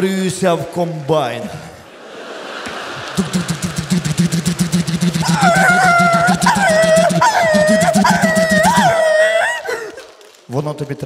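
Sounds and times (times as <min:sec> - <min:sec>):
man imitating engine with voice: 0:03.2 - 0:09.6.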